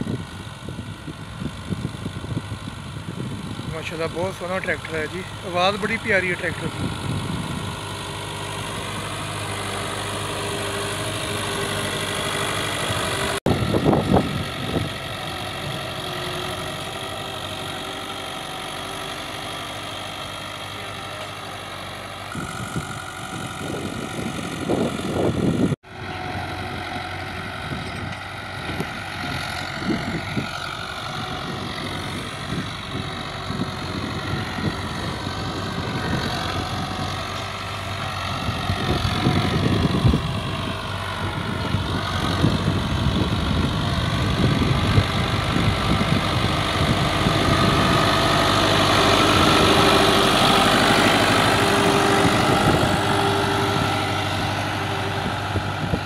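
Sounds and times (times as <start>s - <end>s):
wind buffeting microphone: 0.0s - 3.7s, 6.6s - 9.7s, 12.8s - 15.9s, 22.3s - 56.0s
tractor diesel engine running: 0.0s - 56.0s.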